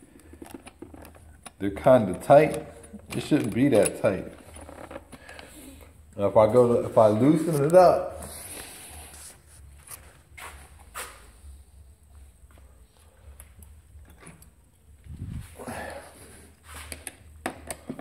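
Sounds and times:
hand tools clicking and clunking: 0.1s - 5.5s, 16.8s - 18.0s.

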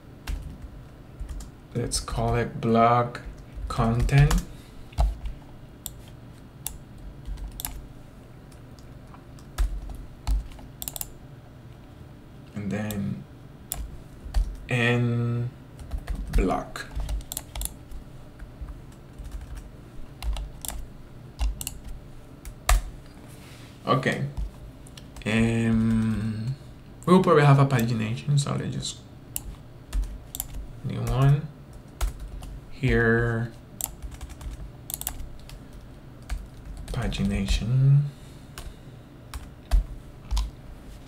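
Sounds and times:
keyboard typing: 0.2s - 1.5s, 3.2s - 7.8s, 8.8s - 11.2s, 13.7s - 14.6s, 15.8s - 17.8s, 18.6s - 19.6s, 20.2s - 20.8s, 21.4s - 22.9s, 24.1s - 27.9s, 29.4s - 37.6s, 39.3s - 40.5s.

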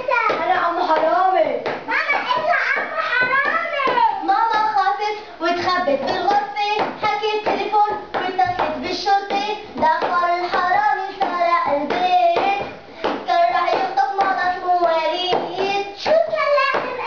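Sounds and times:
hand claps: 0.2s - 4.1s, 6.3s - 17.0s.

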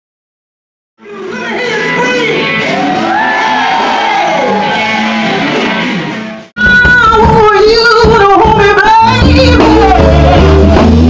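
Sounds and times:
live blues band playing: 1.2s - 11.0s
woman singing a long belted note: 6.6s - 10.5s.

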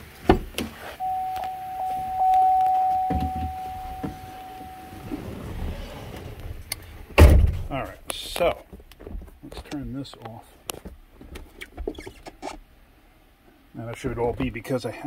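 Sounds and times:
steady electronic tone: 1.0s - 6.0s.

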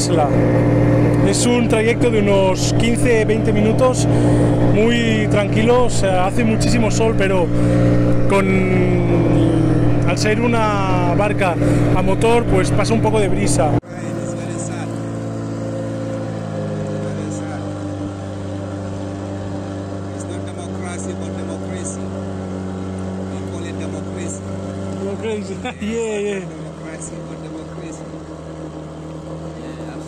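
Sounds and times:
boat motor running: 0.0s - 30.0s.

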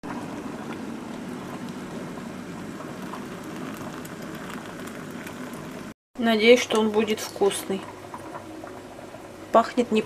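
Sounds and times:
hot water pouring into mug: 0.1s - 6.0s.

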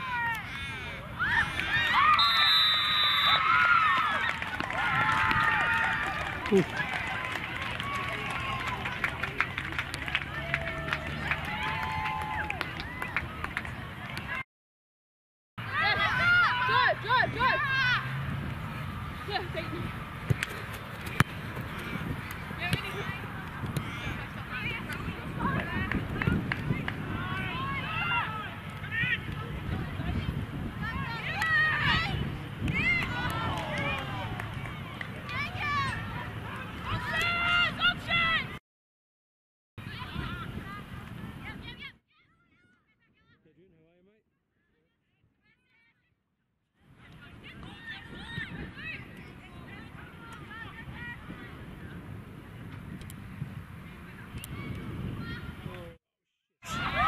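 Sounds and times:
distant people shouting: 15.6s - 18.3s, 30.8s - 38.5s
distant players shouting: 15.6s - 19.8s, 20.5s - 24.8s.

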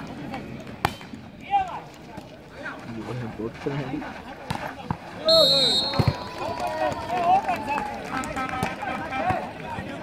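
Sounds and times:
people shouting and calling: 4.6s - 10.0s.

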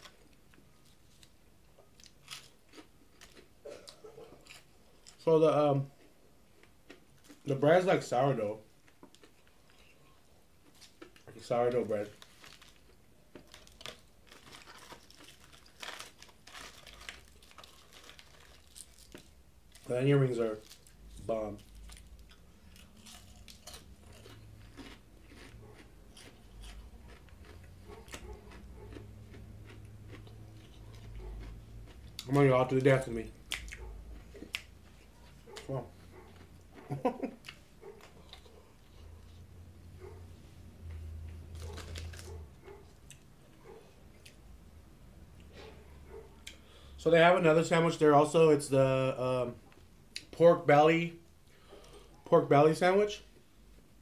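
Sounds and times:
crunchy chewing: 0.0s - 5.2s, 8.8s - 39.4s, 40.8s - 44.4s.

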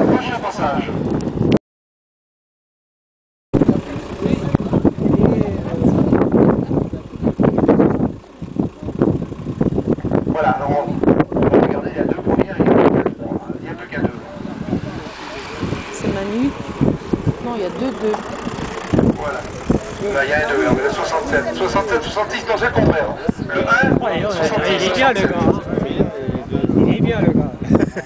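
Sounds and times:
voices: 0.0s - 1.2s, 3.6s - 28.0s
heavy low roadside rumble: 0.0s - 1.6s, 3.6s - 28.0s
wind noise on microphone: 0.0s - 1.6s, 3.6s - 28.0s
cyclists passing: 3.7s - 28.0s.

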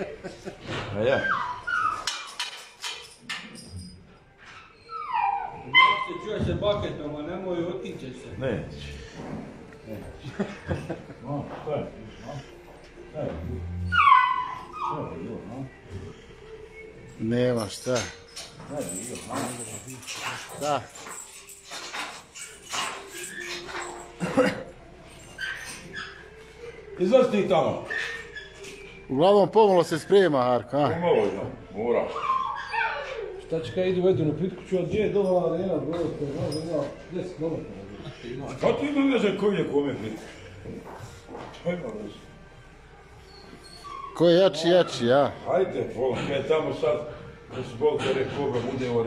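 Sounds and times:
animal whining: 0.9s - 6.4s, 12.1s - 24.5s, 25.1s - 29.1s, 31.0s - 34.3s, 42.8s - 45.1s
animal whines: 1.0s - 2.4s, 4.4s - 6.3s, 13.3s - 16.9s, 27.7s - 29.0s, 32.0s - 33.8s, 43.2s - 45.0s.

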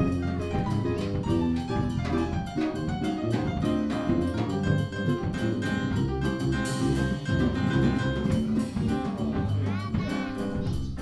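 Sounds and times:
piano: 0.0s - 11.0s
walking double bass: 0.0s - 11.0s.

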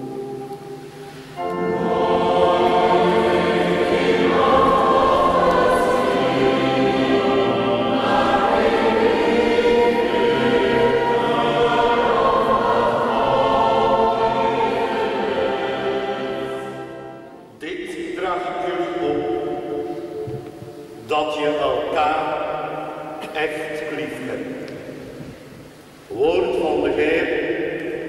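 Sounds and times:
choir singing a hymn: 0.0s - 25.4s.

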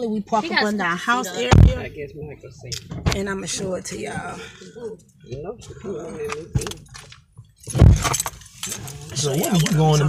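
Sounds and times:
loud thump: 1.5s - 2.0s, 7.7s - 8.2s
keys jangling: 6.7s - 10.0s.

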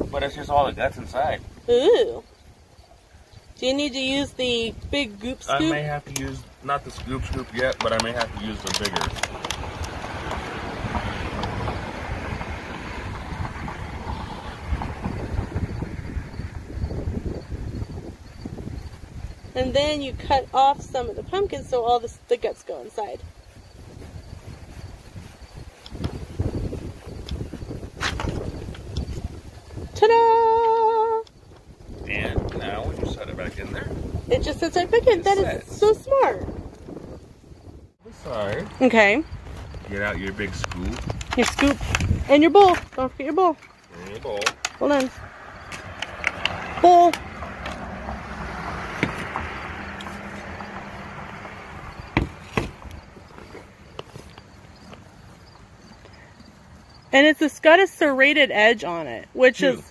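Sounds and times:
wind rumbling on microphone: 0.0s - 57.8s.

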